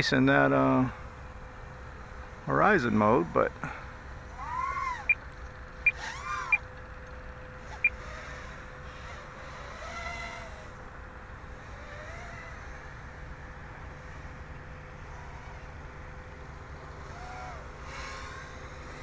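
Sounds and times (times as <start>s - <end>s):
quadcopter motors whining: 0.0s - 19.0s.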